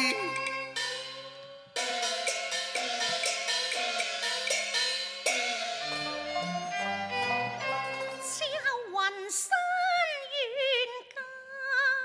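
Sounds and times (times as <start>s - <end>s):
percussion strikes with cymbals: 0.0s - 8.4s
sustained sliding melody notes: 0.0s - 8.6s.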